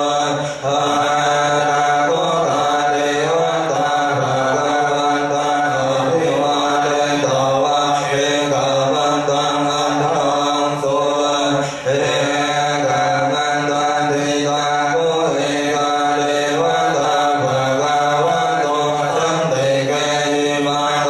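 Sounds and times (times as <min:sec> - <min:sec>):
many voices chanting in unison: 0:00.0 - 0:21.0.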